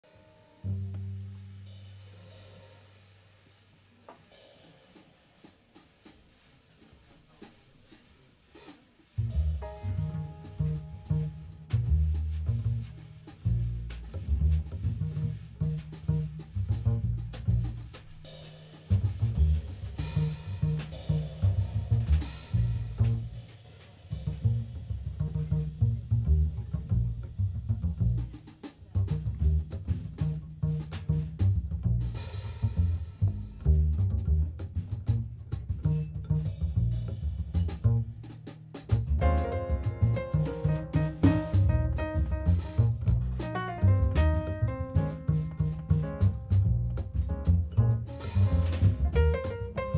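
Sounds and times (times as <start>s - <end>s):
piano: 0.0s - 3.1s, 9.2s - 17.8s, 19.1s - 23.4s, 39.0s - 49.9s
upright double bass: 0.0s - 3.3s, 9.1s - 49.9s
drum kit: 0.0s - 49.9s.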